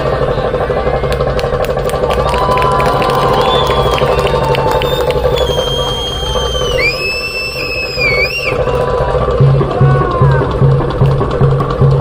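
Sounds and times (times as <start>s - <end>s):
audience noise: 0.0s - 12.0s
high whistled note: 3.2s - 8.8s.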